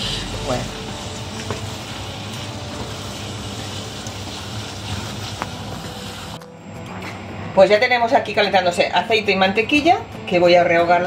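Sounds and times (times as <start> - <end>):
food sizzling in a pan: 0.0 - 6.4.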